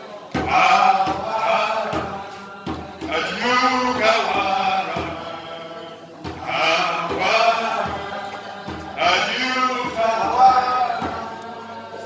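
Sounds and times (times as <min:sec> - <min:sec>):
congregation singing in unison: 0:00.0 - 0:12.0
steady low beat: 0:00.4 - 0:11.8.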